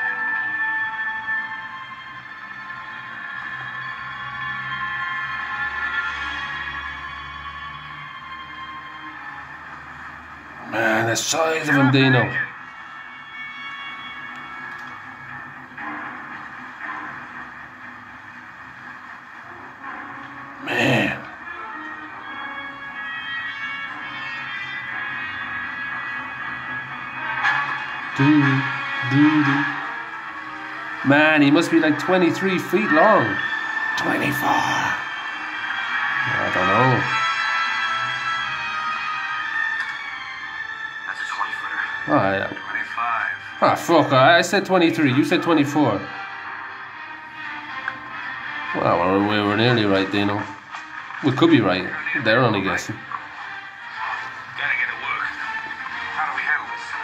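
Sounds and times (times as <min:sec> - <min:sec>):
film score held notes: 0:00.0 - 0:57.0
low drone: 0:26.2 - 0:37.2.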